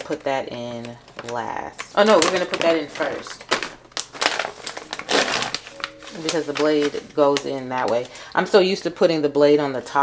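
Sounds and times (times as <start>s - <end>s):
plastic pouch crinkling: 0.0s - 8.4s.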